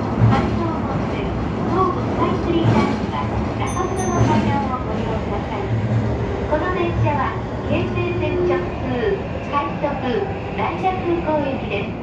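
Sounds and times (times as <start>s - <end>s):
subway train rumbling in tunnel: 0.0s - 12.0s.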